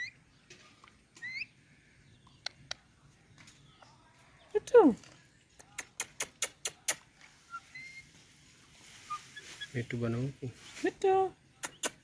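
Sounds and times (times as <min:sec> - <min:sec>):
sharp clicks: 0:05.6 - 0:07.1.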